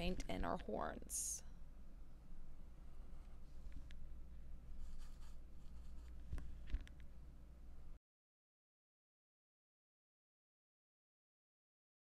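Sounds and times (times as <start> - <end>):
paintbrush brushing and scratching: 4.7 - 6.6.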